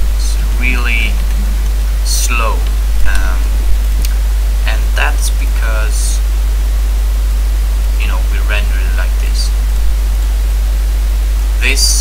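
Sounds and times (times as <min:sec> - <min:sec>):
electrical hum with hiss: 0:00.0 - 0:12.0
faint voice sounds: 0:00.1 - 0:03.6, 0:08.0 - 0:09.5.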